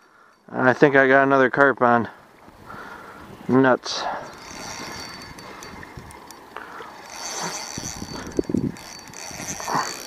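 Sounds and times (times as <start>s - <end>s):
fishing reel clicking: 4.1s - 10.0s.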